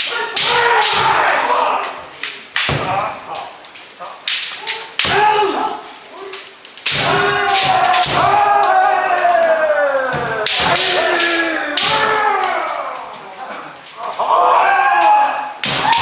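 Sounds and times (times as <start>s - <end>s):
bamboo swords clacking: 0.0s - 14.4s, 15.0s - 16.0s
long falling shouts: 7.1s - 13.4s, 14.1s - 16.0s.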